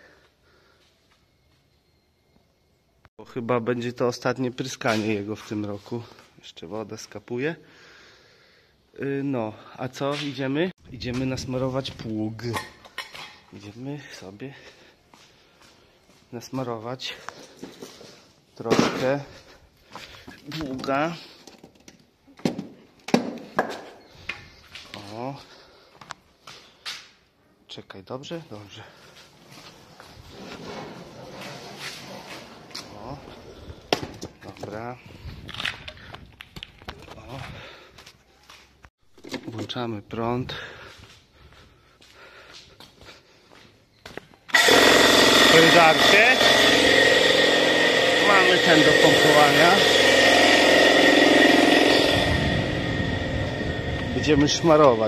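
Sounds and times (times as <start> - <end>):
electric air compressor running: 44.5 - 55.0.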